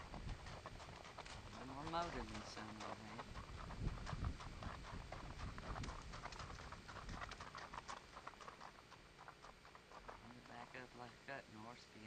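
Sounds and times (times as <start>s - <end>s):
hooves crunching on gravel: 0.0s - 11.9s.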